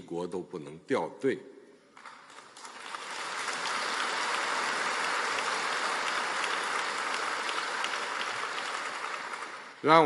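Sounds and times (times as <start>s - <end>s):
audience applauding: 2.0s - 10.0s.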